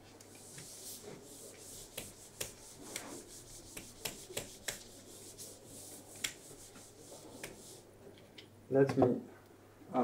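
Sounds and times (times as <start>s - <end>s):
marker rubbing on whiteboard: 0.4s - 7.9s
marker tapping whiteboard: 1.9s - 3.1s, 3.7s - 5.0s, 6.1s - 7.7s.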